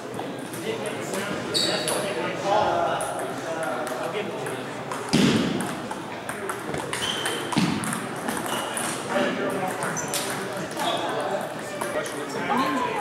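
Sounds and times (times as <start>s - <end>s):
table tennis balls clicking: 3.0s - 9.0s.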